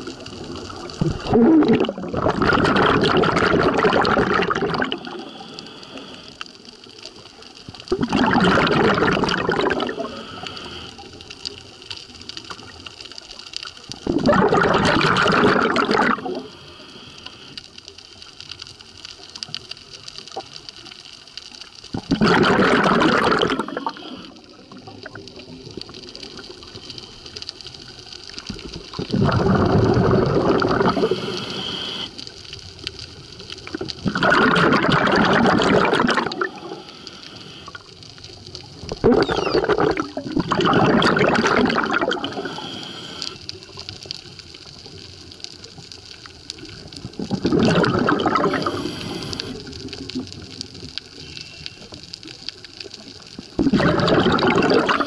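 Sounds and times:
underwater exhaled bubbles gurgling: 0.0s - 55.0s.

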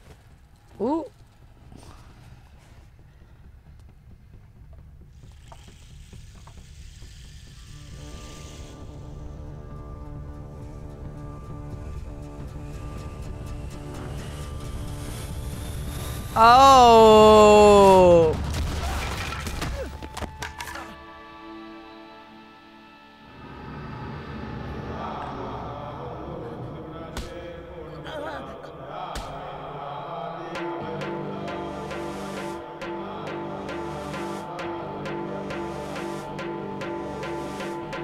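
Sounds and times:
dramatic film score: 1.8s - 38.0s
low rumbling drone: 2.4s - 17.1s, 23.1s - 28.0s
sustained music tones: 6.0s - 18.3s, 20.0s - 27.8s, 28.9s - 38.0s.

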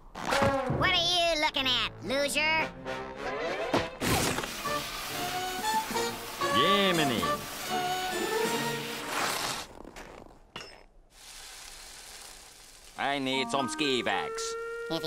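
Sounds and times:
cartoon music: 13.2s - 15.0s.

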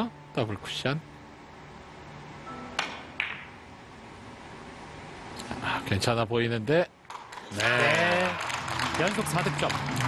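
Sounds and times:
billiard cue and balls clicking: 2.8s - 3.6s.

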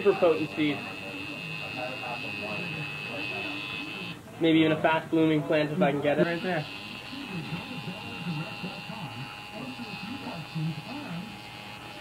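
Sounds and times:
tattoo machine buzzing: 0.0s - 4.2s, 6.2s - 12.0s
low background talk: 0.0s - 12.0s.

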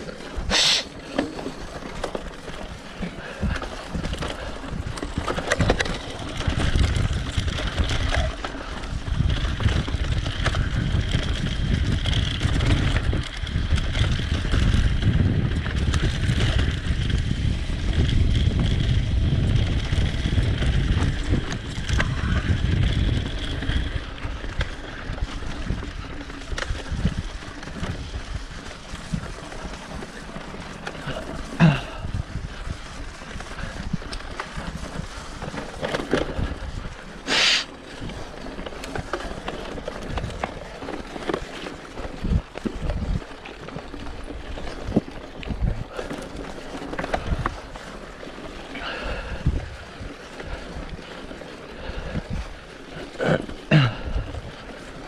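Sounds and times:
bike tyre and frame rattle: 0.0s - 55.0s
wind on microphone: 3.0s - 29.6s, 39.0s - 55.0s.

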